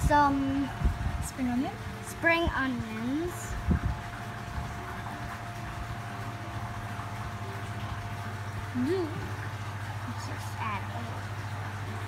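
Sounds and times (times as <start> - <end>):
steady low hum: 0.0 - 12.0
thin constant whine: 0.0 - 12.0.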